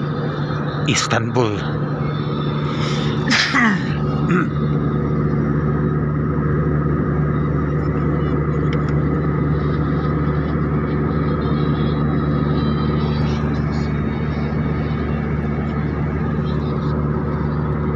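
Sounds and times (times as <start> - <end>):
vehicle engine drone: 0.0 - 17.9.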